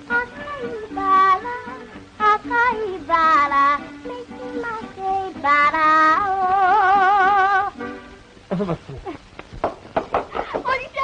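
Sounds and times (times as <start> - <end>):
girl singing: 0.0 - 7.8, 10.3 - 11.0
instrumental accompaniment: 0.0 - 10.7.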